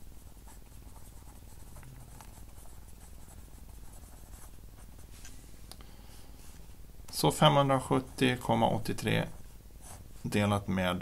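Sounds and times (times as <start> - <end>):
pen scratching on paper: 0.4 - 5.0.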